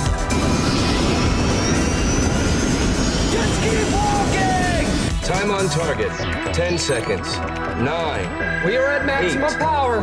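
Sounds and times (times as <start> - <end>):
faint high whine: 0.0 - 5.2
loud jet-like roar: 0.0 - 5.8.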